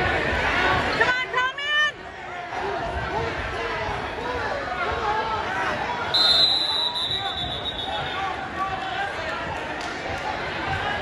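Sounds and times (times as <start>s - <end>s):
spectators' voices: 0.0s - 11.0s
referee whistle blast: 6.1s - 8.2s.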